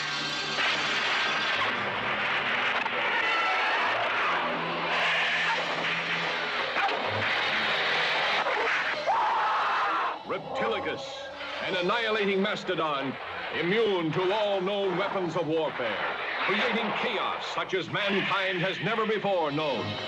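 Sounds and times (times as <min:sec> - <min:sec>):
action sound effects noise: 0:00.0 - 0:09.2, 0:10.1 - 0:20.0.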